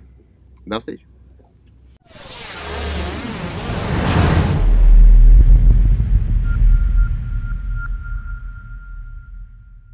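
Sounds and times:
deep bass boom: 2.2 - 9.9
high ringing tone: 6.4 - 9.9.

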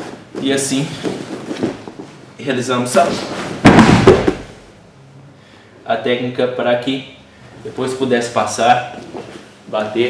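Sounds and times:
heavy cloth rustling: 0.0 - 2.3
body thudding onto mat: 3.4 - 4.6.

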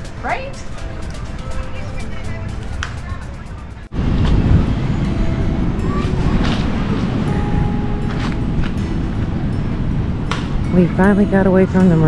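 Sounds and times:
background music: 0.0 - 12.0
wind rumbling on microphone: 1.2 - 12.0.

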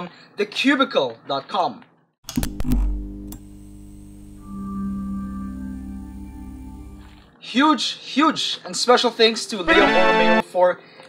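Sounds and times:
sharp clicks: 2.3 - 3.5.

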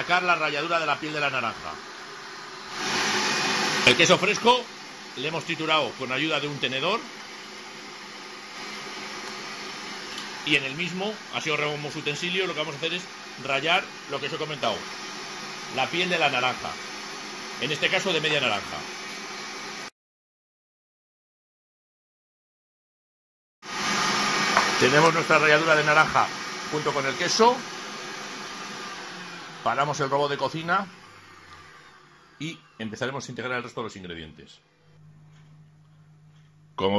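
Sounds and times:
food processor motor hum: 0.0 - 19.9, 23.7 - 33.0
kitchen robot motor running: 28.6 - 33.0.

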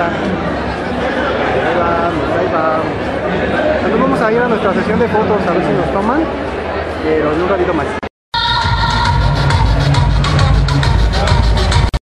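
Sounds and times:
music with heavy bass beat: 8.4 - 12.0.

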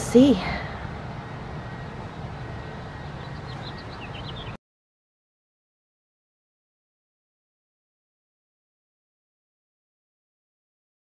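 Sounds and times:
small bird chirping: 1.7 - 4.6.

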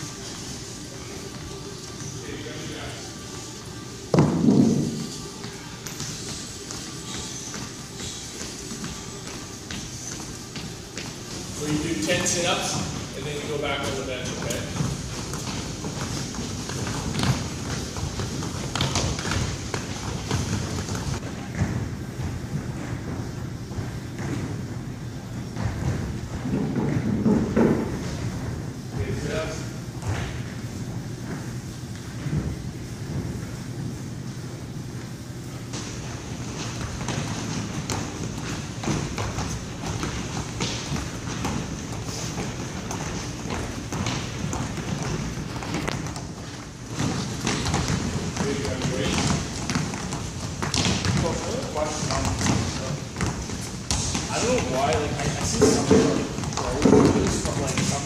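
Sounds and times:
footsteps on wooden bench: 4.1 - 29.1, 35.7 - 58.0.

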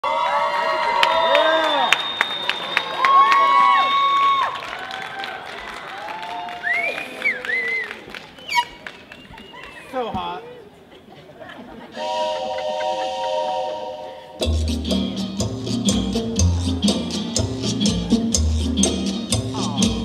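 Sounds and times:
audience cheering and whooping: 0.0 - 9.9
scattered clapping: 1.0 - 9.9.

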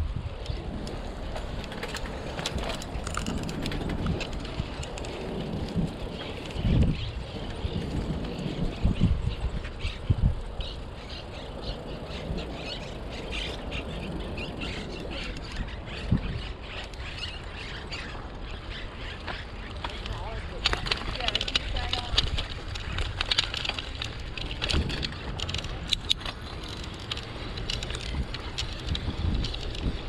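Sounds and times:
bicycle rolling along trail: 0.0 - 30.0
low rumble of wind: 0.0 - 30.0
birds chirping: 0.4 - 30.0.

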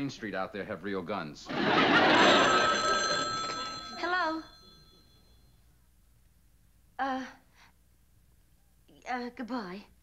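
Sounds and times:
audience laughter: 1.5 - 3.2
telephone bell ringing: 1.8 - 5.6.

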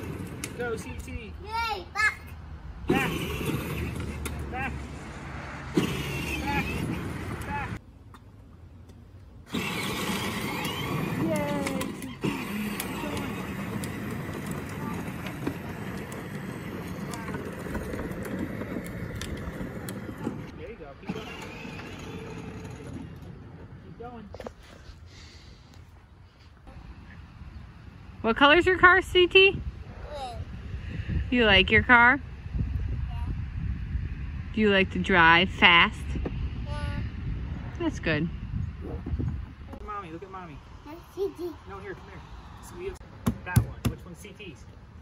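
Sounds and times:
plastic wheels rolling on asphalt: 0.0 - 1.2, 2.9 - 4.6, 5.7 - 7.8, 8.8 - 24.9
young child's voice: 1.4 - 2.4, 11.2 - 12.1, 29.9 - 30.5, 33.0 - 33.4, 36.6 - 37.1, 40.8 - 41.7.

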